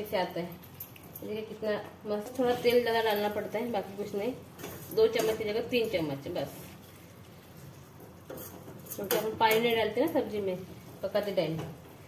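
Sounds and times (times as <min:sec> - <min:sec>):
metal spatula stirring in pan: 0:06.7 - 0:09.9.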